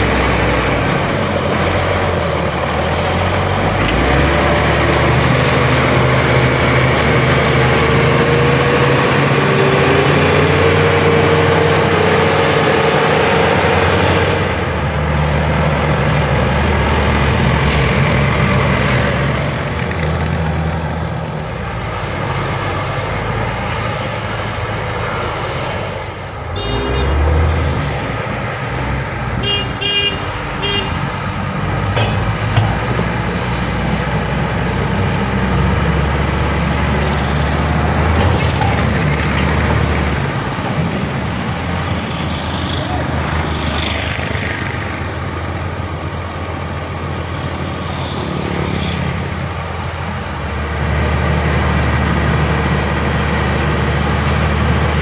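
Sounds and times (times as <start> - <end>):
bulldozer diesel engine running: 0.0 - 55.0
vehicle horn toots: 26.5 - 27.3, 29.4 - 31.0.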